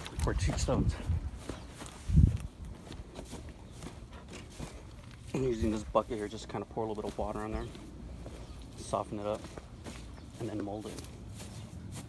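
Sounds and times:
footsteps on grass: 0.0s - 12.0s.

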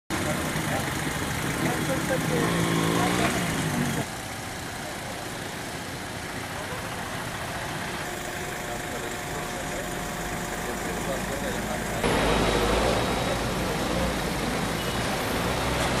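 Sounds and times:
people talking: 0.1s - 4.1s, 6.4s - 7.1s, 8.4s - 12.3s
car engines in traffic: 0.1s - 16.0s.

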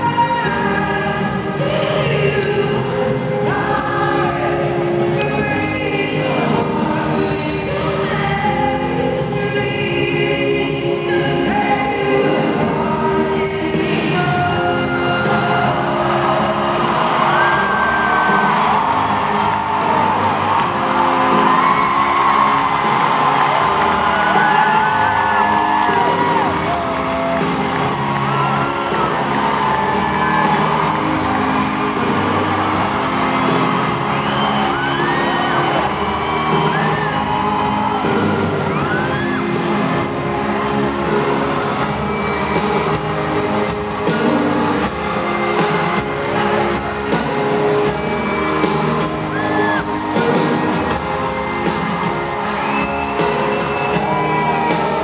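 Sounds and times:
live pop ballad over sound system: 0.0s - 55.0s
person singing: 0.0s - 55.0s
fans whooping and shrieking: 14.0s - 55.0s.

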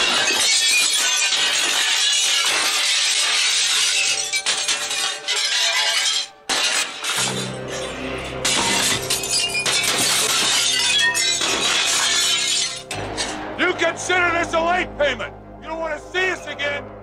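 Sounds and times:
glass shattering: 0.0s - 13.4s
dramatic music score: 7.1s - 17.0s
man speaking: 13.6s - 16.9s.

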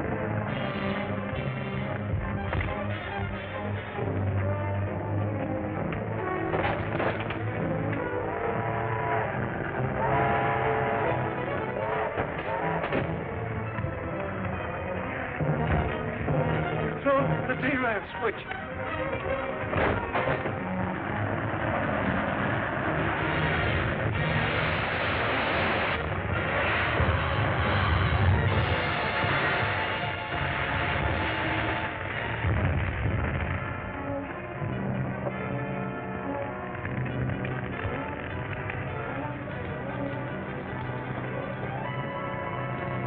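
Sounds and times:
dramatic orchestral music: 0.0s - 43.0s
explosion crashing and rumbling: 6.4s - 11.2s, 19.6s - 35.5s.

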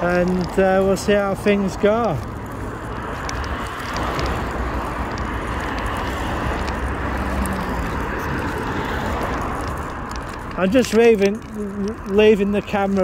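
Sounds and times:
cars passing by: 0.0s - 13.0s.

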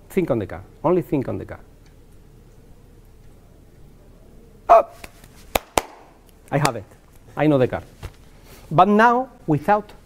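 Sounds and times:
man exclaiming: 4.7s - 5.0s
sharp smacks: 5.0s - 6.8s.

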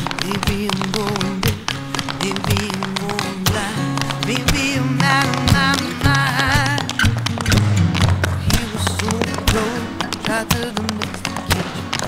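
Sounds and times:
acoustic guitar music: 0.0s - 12.0s
tap shoes on wooden floor: 0.0s - 12.0s.

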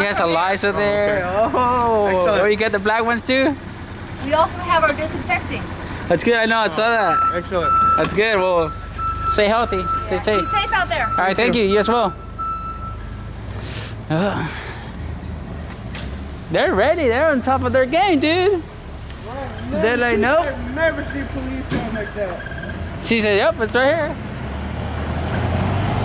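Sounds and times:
car engine rumble: 0.0s - 26.0s.

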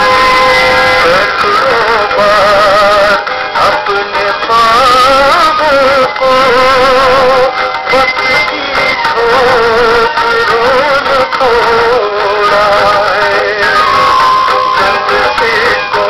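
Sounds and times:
person singing over instrumental backing: 0.0s - 16.0s.

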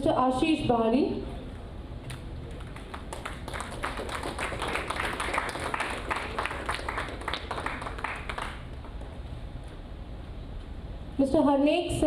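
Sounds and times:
audience clapping: 2.5s - 9.2s.

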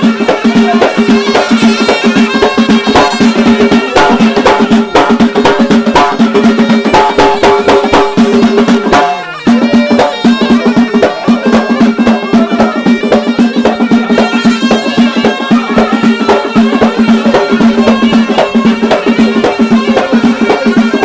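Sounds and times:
frame drums beating: 0.0s - 21.0s.

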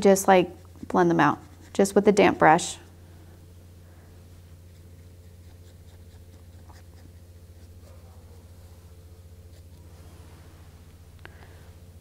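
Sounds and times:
brush dabbing on paper: 0.0s - 2.4s
low electrical hum: 0.0s - 12.0s.

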